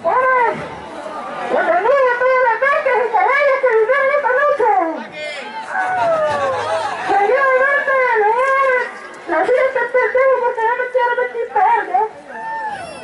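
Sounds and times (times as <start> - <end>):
man wailing in falsetto: 12.7 - 13.0.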